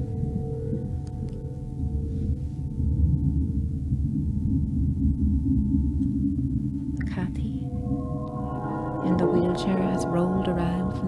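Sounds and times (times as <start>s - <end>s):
electronic ambient drone: 0.0s - 11.0s
steady held tones: 6.2s - 11.0s.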